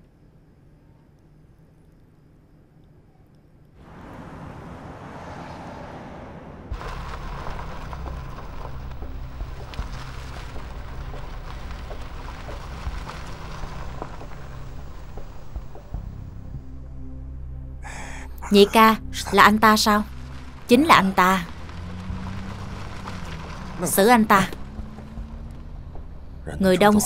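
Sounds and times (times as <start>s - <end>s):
traffic noise: 3.8s - 17.2s, 17.8s - 27.0s
low hum: 3.8s - 27.0s.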